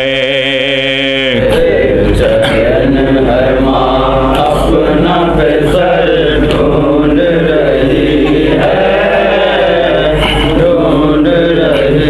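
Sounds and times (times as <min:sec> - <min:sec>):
men chanting a mourning lament: 0:00.0 - 0:12.0.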